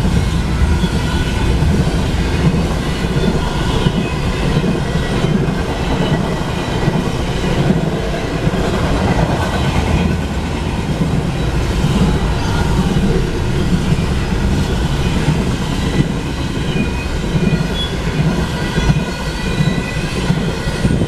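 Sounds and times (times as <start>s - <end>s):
freight train wheels rumbling: 0.0s - 21.0s.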